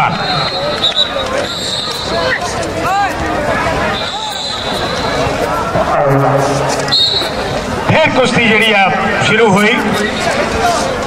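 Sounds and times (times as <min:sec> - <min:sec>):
crowd noise: 0:00.0 - 0:11.0
man talking: 0:05.8 - 0:06.9, 0:07.9 - 0:10.8
steady high-pitched tone: 0:05.8 - 0:07.6.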